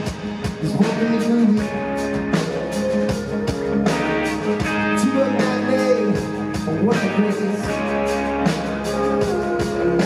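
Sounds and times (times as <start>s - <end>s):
electric guitar melody: 0.0s - 10.0s
live rock band playing: 0.0s - 10.0s.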